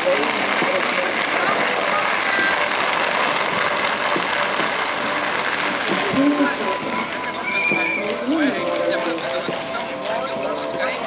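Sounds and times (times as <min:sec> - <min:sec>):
faint children's voices: 0:00.0 - 0:11.0
skate wheels rolling on asphalt: 0:00.0 - 0:11.0.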